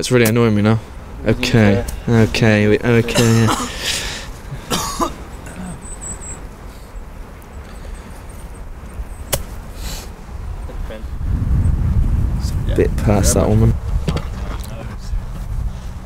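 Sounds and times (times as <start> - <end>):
wind rumble on microphone: 6.4 - 16.0.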